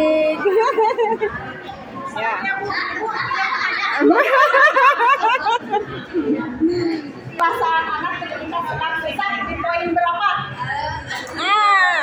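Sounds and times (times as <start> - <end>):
women laughing and talking: 0.0 - 1.6, 3.3 - 7.2.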